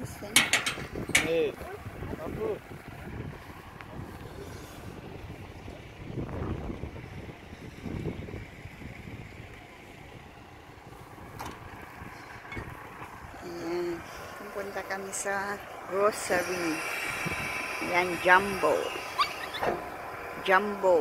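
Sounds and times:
diesel truck engine rumbling: 0.0s - 21.0s.

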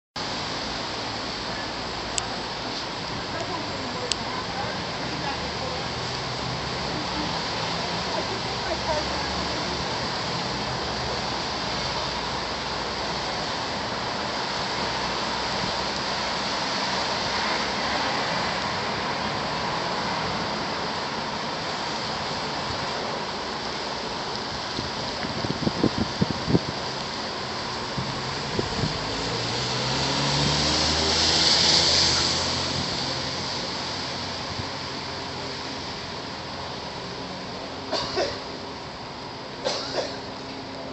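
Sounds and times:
street hum: 0.2s - 40.9s
tyres hissing on wet pavement: 0.2s - 40.9s
vehicle passing close: 28.0s - 35.8s.

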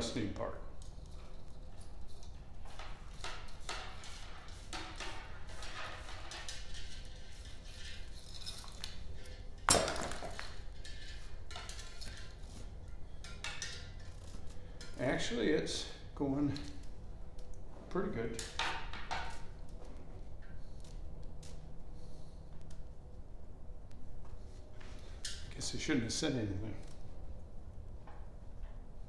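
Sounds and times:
wire clicking and scraping in metal tube: 0.8s - 9.6s, 10.5s - 15.2s.

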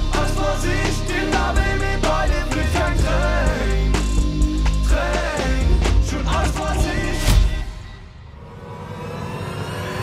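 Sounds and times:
swell of noise: 6.2s - 10.0s.

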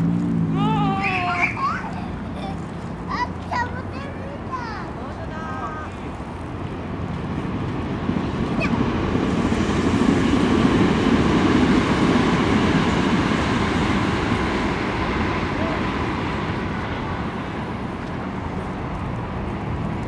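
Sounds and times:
passing vehicle rumble: 0.0s - 20.0s.

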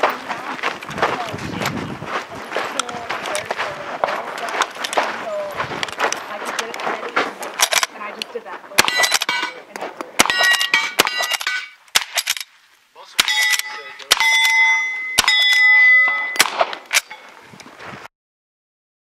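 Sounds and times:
lever-action rifle shots: 7.5s - 8.0s, 8.8s - 9.6s, 10.2s - 12.5s, 13.2s - 17.2s
bullet clanging on steel target: 8.8s - 12.5s, 13.2s - 17.3s.

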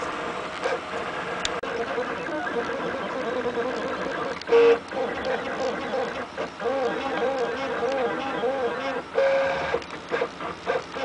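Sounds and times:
stepper motors whining: 0.0s - 11.0s
loud steady tone: 4.4s - 11.0s.

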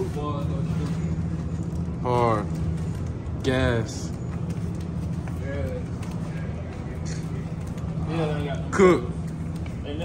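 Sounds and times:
freezer cases humming: 0.0s - 10.0s.

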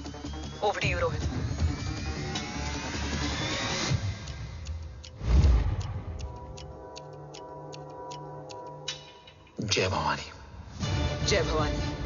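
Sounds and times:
tense ticking pulse: 0.0s - 9.6s
deep boom: 5.2s - 6.2s.

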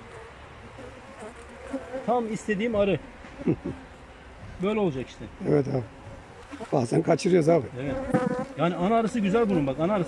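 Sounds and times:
bees buzzing: 7.7s - 10.0s.

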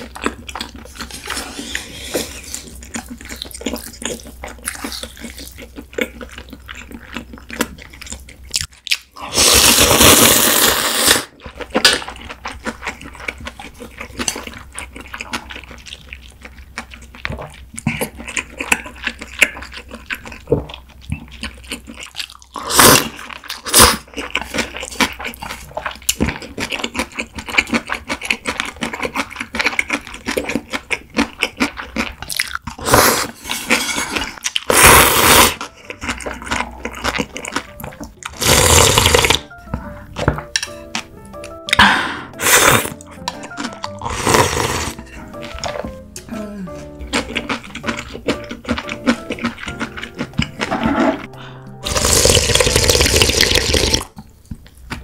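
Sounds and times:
wet chewing: 0.0s - 55.0s
loud noodle slurping: 9.2s - 11.3s, 22.6s - 24.1s, 32.8s - 37.0s, 38.3s - 39.5s, 41.8s - 45.0s, 50.6s - 54.1s.

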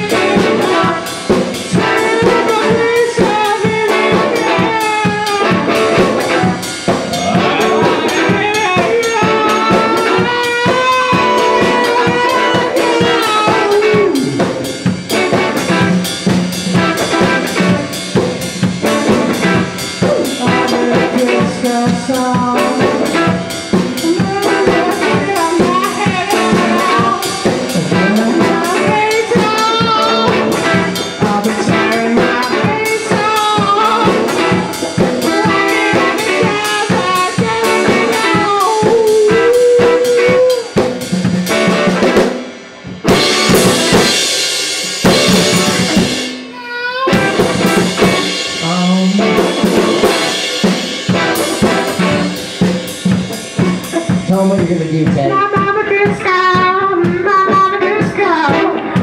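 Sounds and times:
drum kit: 0.0s - 59.0s
electric guitar: 0.0s - 59.0s.

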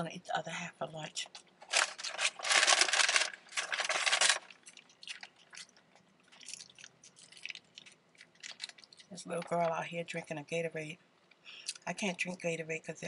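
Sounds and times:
close-miked chewing and crunching: 1.2s - 9.8s.

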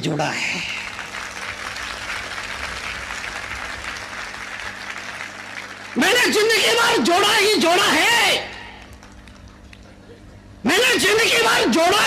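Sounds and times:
audience applauding: 0.8s - 6.6s, 8.7s - 9.9s.

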